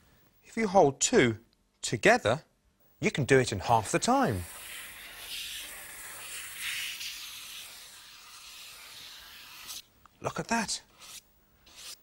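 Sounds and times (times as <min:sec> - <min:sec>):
chalk scratching on paper: 0:03.8 - 0:09.8, 0:10.9 - 0:12.0.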